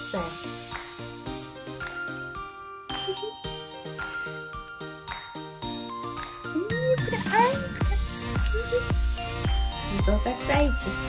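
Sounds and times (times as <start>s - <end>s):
tinkling bell-like music: 0.0s - 11.0s.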